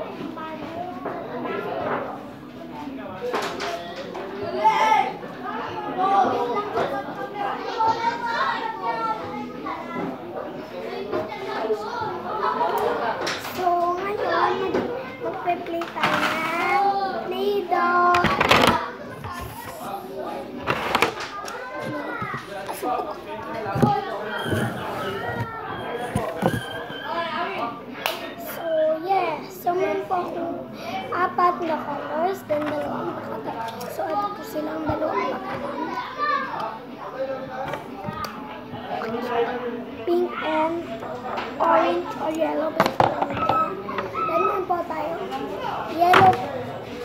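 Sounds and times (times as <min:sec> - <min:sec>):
children chattering and playing: 0:00.0 - 0:47.0
young boy talking: 0:13.4 - 0:20.0, 0:28.5 - 0:36.7, 0:40.0 - 0:40.9, 0:41.6 - 0:46.6.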